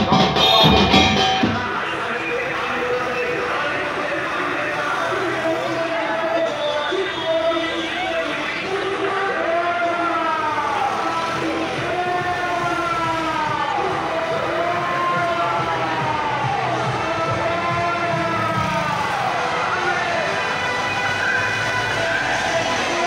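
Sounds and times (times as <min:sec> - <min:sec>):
sirens wailing: 0:00.0 - 0:23.0
vehicles passing: 0:00.0 - 0:23.0.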